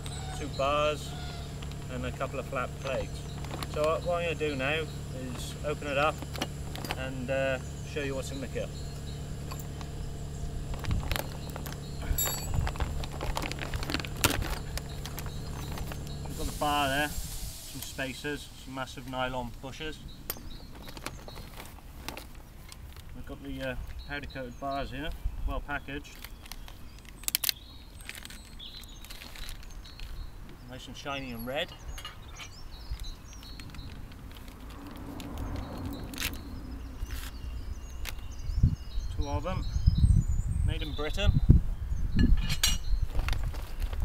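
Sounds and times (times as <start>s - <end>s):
outdoor background noise: 0.0s - 44.0s
packaging clicks and crinkles: 2.9s - 4.0s, 10.8s - 16.1s, 20.6s - 24.0s, 26.0s - 30.2s
plastic bag rustling: 10.8s - 16.1s, 20.6s - 23.2s, 26.1s - 30.2s
metal fittings clinking: 12.0s - 15.9s.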